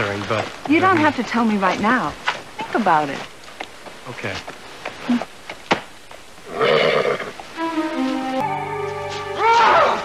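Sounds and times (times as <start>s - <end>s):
horse whinnying: 6.5s - 7.4s
music with long held notes: 7.6s - 10.0s.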